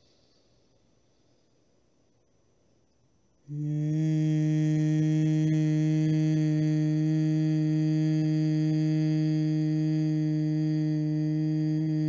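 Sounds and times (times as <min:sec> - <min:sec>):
woman humming: 0:03.5 - 0:12.0.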